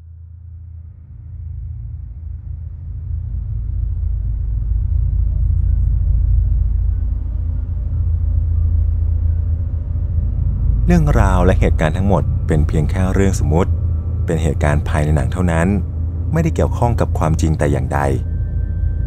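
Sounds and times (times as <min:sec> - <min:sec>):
deep low rumble: 0:00.0 - 0:19.0.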